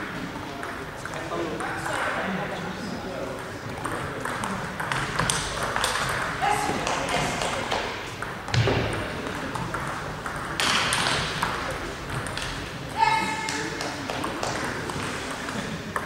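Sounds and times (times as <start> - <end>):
murmur of voices: 0.0 - 16.0
table tennis balls clicking: 3.4 - 12.8, 13.4 - 16.0.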